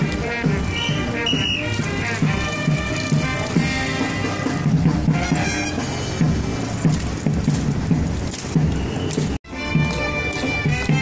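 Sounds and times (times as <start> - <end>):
marching music with drum beat: 0.0 - 11.0
rifles clattering and slapping: 1.6 - 4.2, 6.5 - 10.8.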